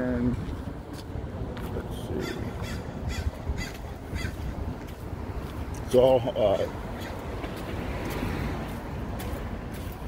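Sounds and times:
low street rumble: 0.0s - 10.0s
bird calling: 2.2s - 4.6s.

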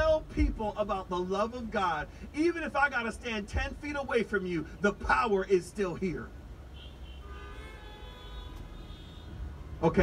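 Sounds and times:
low rumble inside car cabin: 0.0s - 6.7s.

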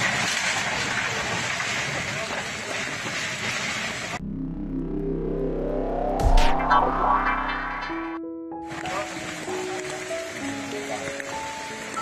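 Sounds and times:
heavy rain on umbrella: 0.0s - 4.2s, 8.7s - 12.0s.

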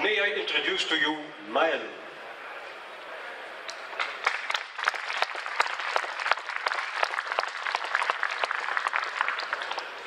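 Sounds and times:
crowd clapping in a large hall: 3.7s - 10.0s.

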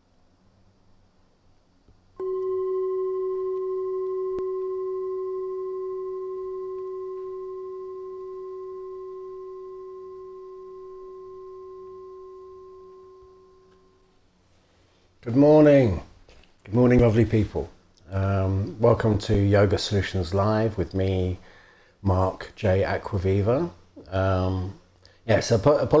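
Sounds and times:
bell-like tone ringing: 2.2s - 14.1s.

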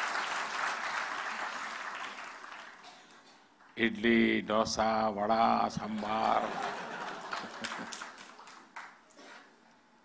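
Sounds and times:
audience clapping: 0.0s - 3.8s, 5.8s - 9.2s.

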